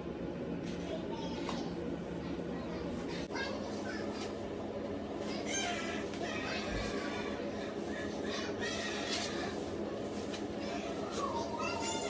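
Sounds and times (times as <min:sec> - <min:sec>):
steady low hum: 0:00.0 - 0:12.0
high-pitched voices talking: 0:00.8 - 0:12.0.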